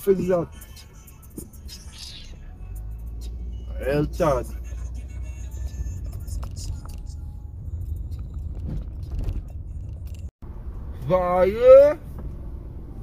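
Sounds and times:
car cabin rumble: 1.2s - 13.0s.

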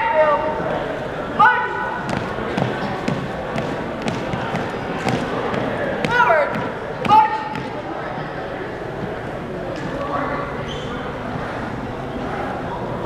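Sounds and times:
marching footsteps on gym floor: 2.0s - 7.8s
shoe squeaks: 10.6s - 11.1s.

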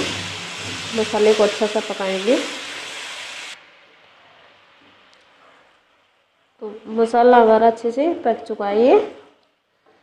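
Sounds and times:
paste sizzling in oil: 0.0s - 3.7s.

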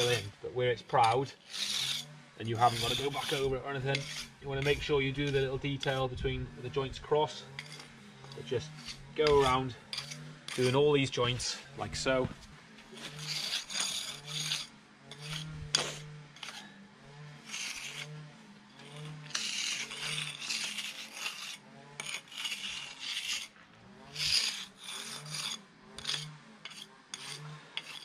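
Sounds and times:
pointing bar scraping mortar joints: 0.0s - 28.0s.

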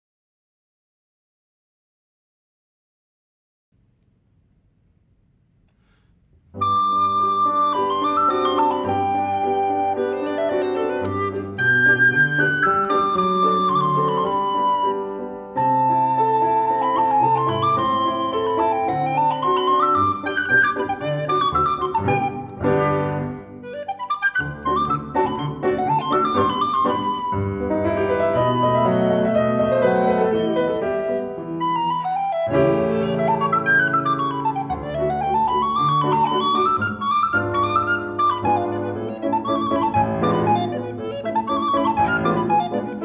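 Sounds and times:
piano accompaniment: 6.5s - 43.0s
recorder melody: 6.5s - 43.0s.

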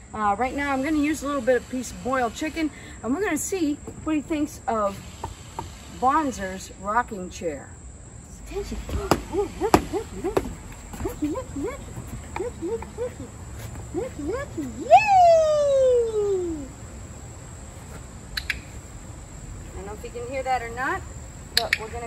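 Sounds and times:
sharp clicks: 21.6s - 22.0s.

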